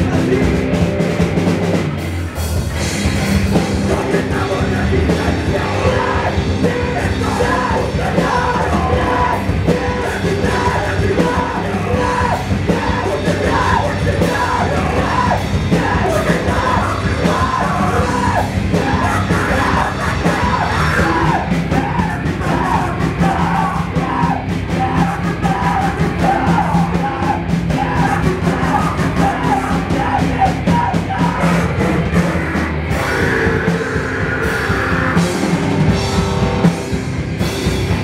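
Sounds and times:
loud electric guitars: 0:00.0 - 0:38.0
shouted vocals: 0:03.8 - 0:35.3.

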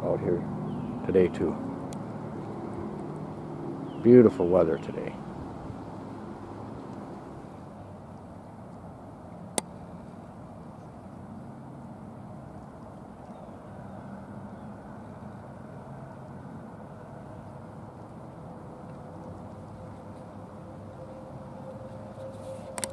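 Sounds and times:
low outdoor rumble: 0:00.0 - 0:22.9.

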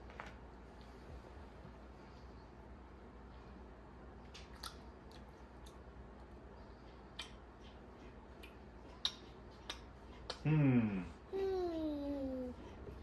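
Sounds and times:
low steady hum: 0:00.0 - 0:13.0
child chewing food: 0:04.2 - 0:13.0
wet mouth clicks: 0:04.3 - 0:05.8, 0:07.1 - 0:07.8, 0:08.4 - 0:10.5.

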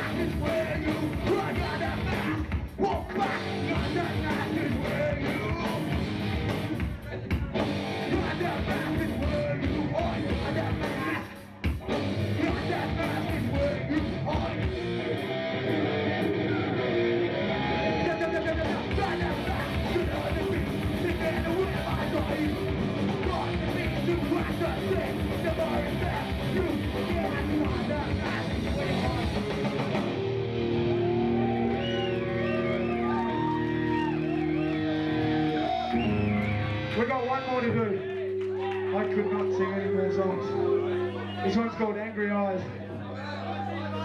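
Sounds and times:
punk band playing live: 0:00.0 - 0:41.5
loud electric guitar strumming: 0:03.2 - 0:41.4
high wavering tone: 0:38.1 - 0:41.9.

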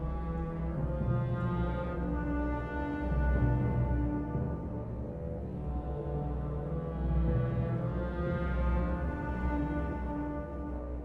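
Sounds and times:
low brass long dark notes: 0:00.0 - 0:11.0
orchestral film score music: 0:00.0 - 0:11.0.

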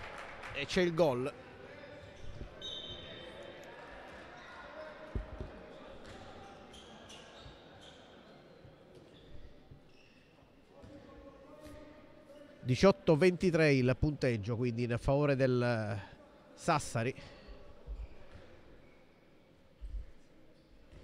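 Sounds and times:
shoe squeaks: 0:02.0 - 0:03.5, 0:04.3 - 0:11.0, 0:17.8 - 0:19.2.

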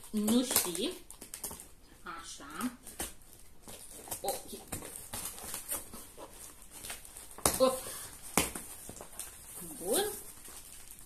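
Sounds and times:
packing tape ripping off cardboard: 0:00.0 - 0:01.8, 0:02.8 - 0:11.0.

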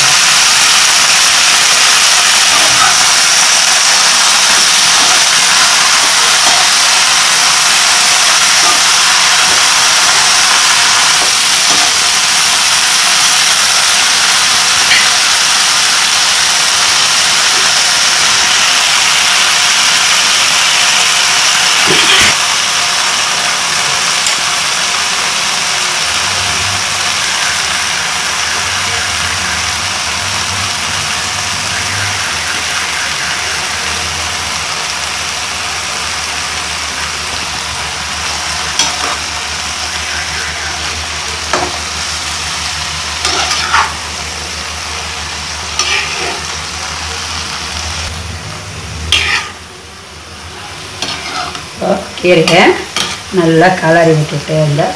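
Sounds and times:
greens sizzling in hot pan: 0:00.0 - 0:48.1, 0:49.1 - 0:54.9.

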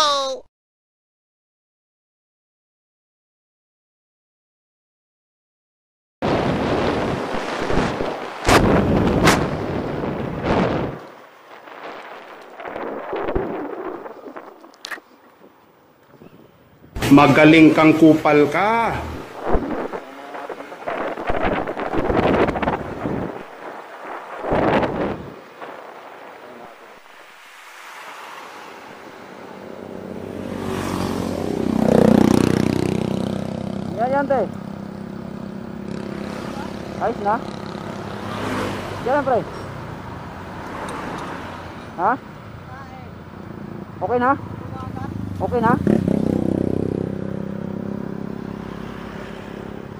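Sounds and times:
wind buffeting microphone: 0:06.2 - 0:17.0, 0:19.0 - 0:27.1
car passing by: 0:17.0 - 0:49.9.

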